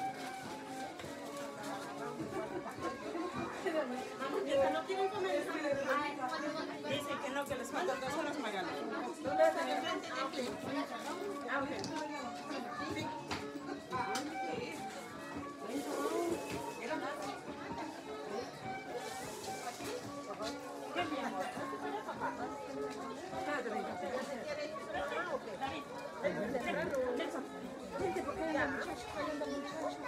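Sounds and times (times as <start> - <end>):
background music: 0.0 - 30.0
many people talking: 0.0 - 30.0.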